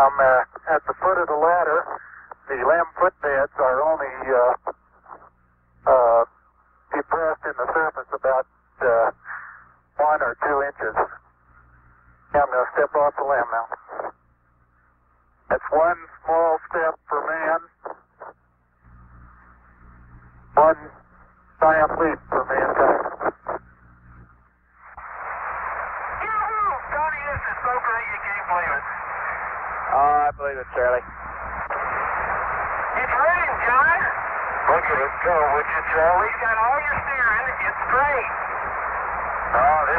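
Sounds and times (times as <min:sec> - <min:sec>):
man speaking over radio: 0:00.0 - 0:09.4, 0:10.0 - 0:11.3, 0:12.3 - 0:14.2, 0:15.5 - 0:18.4, 0:20.5 - 0:21.0, 0:21.6 - 0:23.6, 0:26.2 - 0:31.1, 0:32.9 - 0:38.8, 0:39.5 - 0:39.9
radio hiss: 0:00.0 - 0:39.9
steady low hum: 0:00.0 - 0:39.9.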